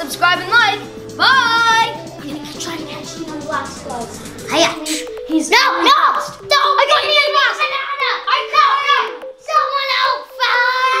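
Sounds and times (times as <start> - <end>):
child singing wavering notes: 4.6 - 11.0.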